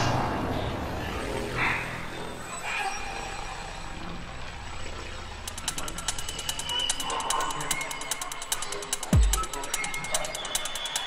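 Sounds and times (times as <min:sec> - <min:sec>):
rapid hi-hat ticks: 0:05.4 - 0:11.0.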